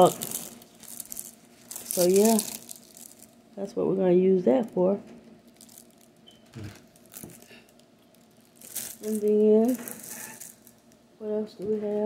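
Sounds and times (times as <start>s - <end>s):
plastic packaging crinkle: 0.0s - 11.0s.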